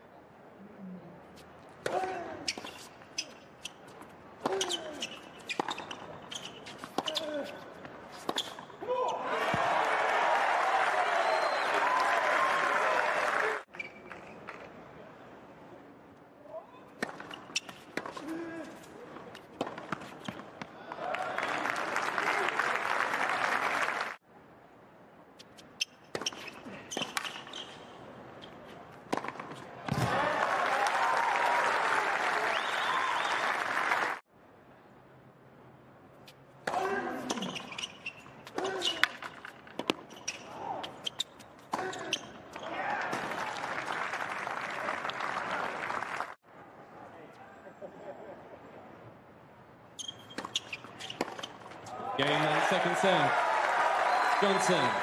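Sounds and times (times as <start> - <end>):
crowd applause and cheering: 9.3 - 13.7, 20.9 - 24.2, 29.9 - 34.2, 42.9 - 46.4, 52.2 - 55.0
tennis ball bouncing: 19.3 - 20.7, 29.0 - 30.1, 50.2 - 51.8
rackets striking tennis ball: 29.0 - 30.1, 38.4 - 40.2.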